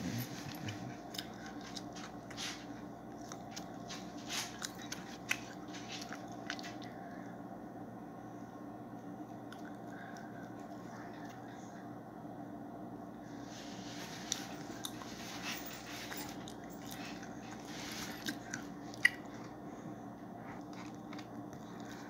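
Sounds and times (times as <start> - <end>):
airplane cabin and engine drone: 0.0 - 22.0.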